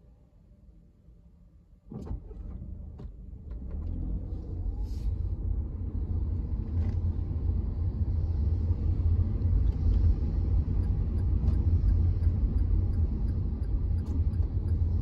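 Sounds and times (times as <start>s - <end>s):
car driving rumble from inside: 1.9s - 15.0s.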